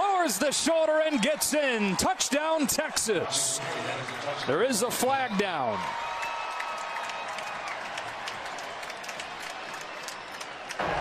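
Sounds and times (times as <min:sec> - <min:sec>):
crowd cheering and clapping: 0:00.0 - 0:11.0.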